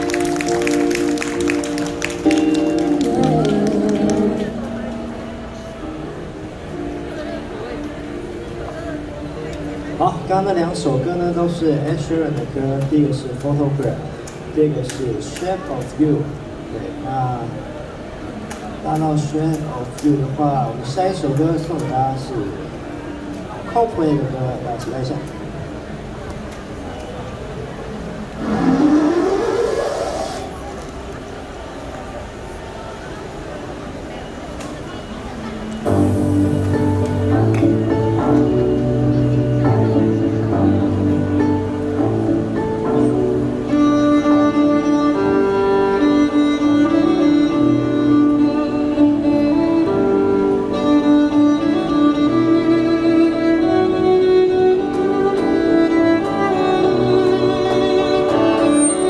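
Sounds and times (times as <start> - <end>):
violin melody: 0.0 - 12.2, 35.4 - 59.0
low accompaniment: 0.0 - 12.9, 35.7 - 59.0
street background noise: 0.0 - 59.0.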